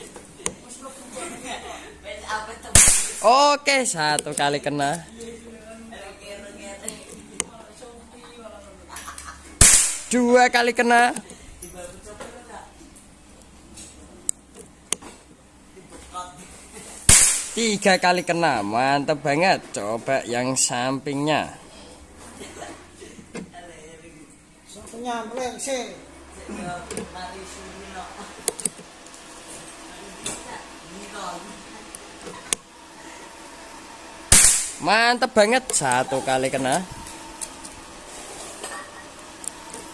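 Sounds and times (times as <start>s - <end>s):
air rifle shot: 2.8s - 3.3s, 9.6s - 10.1s, 17.1s - 17.6s, 34.3s - 34.8s
pellet striking metal target: 2.8s - 3.3s, 9.6s - 10.2s, 17.1s - 17.6s, 34.3s - 34.8s.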